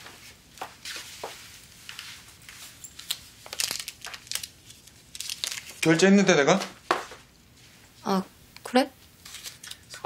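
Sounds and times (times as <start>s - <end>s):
paper crinkling: 1.8s - 6.1s, 9.2s - 10.0s
man talking: 5.8s - 6.7s.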